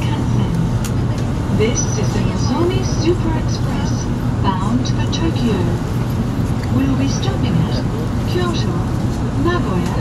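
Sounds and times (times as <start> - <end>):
public address announcement: 0.0 - 10.0
train running rumble: 0.0 - 10.0.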